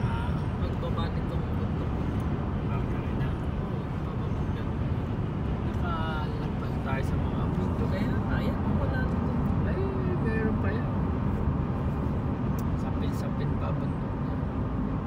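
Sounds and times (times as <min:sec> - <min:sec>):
car cabin road and engine noise: 0:00.0 - 0:15.0.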